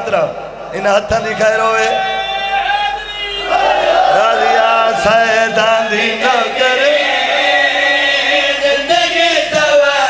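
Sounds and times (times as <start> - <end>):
men chanting into microphones: 1.2 - 10.0.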